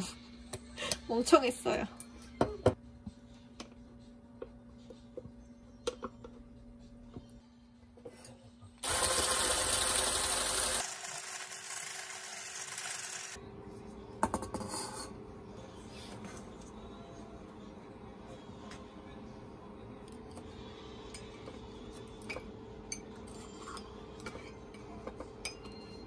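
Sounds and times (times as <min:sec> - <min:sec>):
electric mixer whipping: 0:08.8 - 0:13.4.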